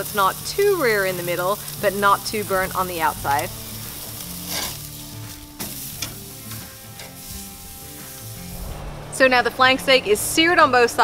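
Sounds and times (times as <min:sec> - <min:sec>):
steak sizzling on a grill: 0:00.0 - 0:08.6.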